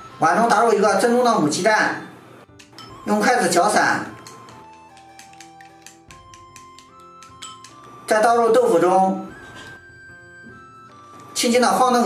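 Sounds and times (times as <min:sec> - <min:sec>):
soft background music: 0:00.0 - 0:12.0
chopsticks clicking on a bowl: 0:02.5 - 0:03.0, 0:04.1 - 0:08.0.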